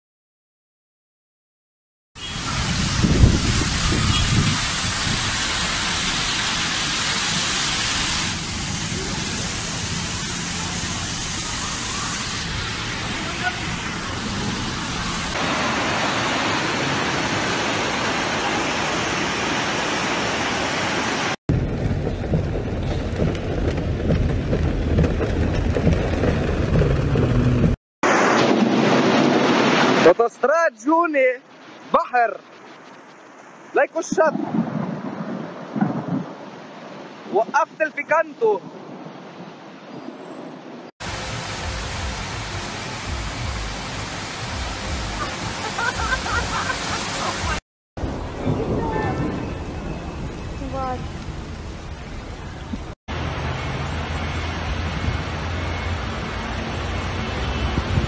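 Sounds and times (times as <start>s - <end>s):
floodwater rushing down street: 2.2s - 30.3s, 41.0s - 58.0s.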